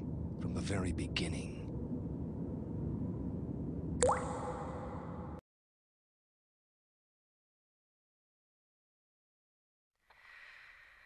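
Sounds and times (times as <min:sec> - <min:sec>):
low rumble: 0:00.0 - 0:05.4
water drop plink: 0:04.0 - 0:05.1.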